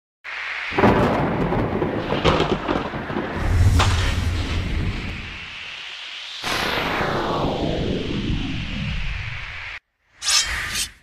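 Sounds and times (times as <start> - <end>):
thunder-like rumble with crackles: 0.7 - 9.8.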